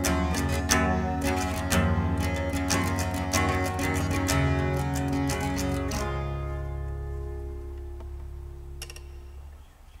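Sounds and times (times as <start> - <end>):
acoustic guitar chord ringing: 0.0 - 9.5.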